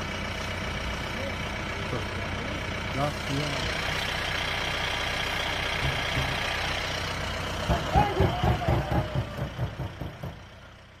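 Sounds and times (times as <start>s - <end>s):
jeep engine running: 0.0s - 11.0s
irregular thumps and knocks: 5.8s - 6.5s.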